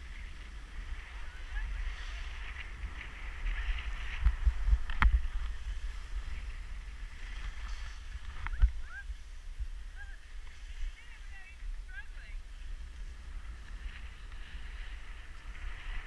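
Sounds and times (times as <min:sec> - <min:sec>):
skis scraping on packed snow: 0:00.0 - 0:16.0
wind buffeting microphone: 0:00.0 - 0:16.0.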